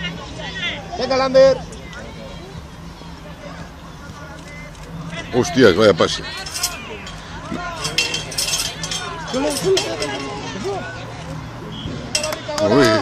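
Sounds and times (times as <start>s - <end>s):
distant shouts of spectators and players: 0.0s - 13.0s
light clinks: 6.4s - 10.4s.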